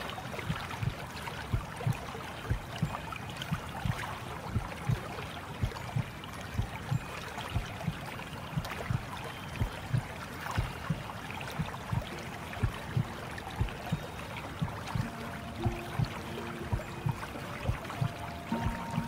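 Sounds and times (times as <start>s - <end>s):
rushing watery noise: 0.0s - 19.0s
soft low thumps: 0.4s - 19.0s.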